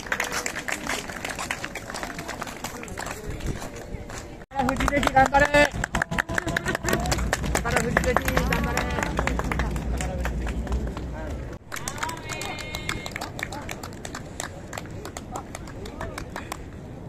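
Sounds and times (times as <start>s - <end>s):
onlookers talking: 0.0s - 17.0s
low rumble: 6.0s - 11.7s.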